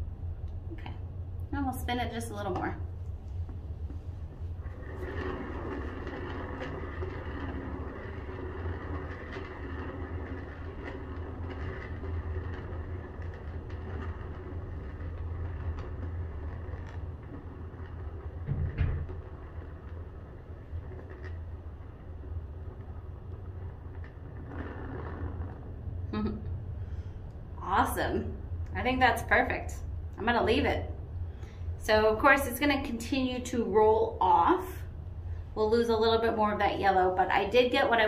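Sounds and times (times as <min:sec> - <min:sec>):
turntable bearings rolling rumble: 0:00.0 - 0:38.0
thump: 0:18.5 - 0:19.0.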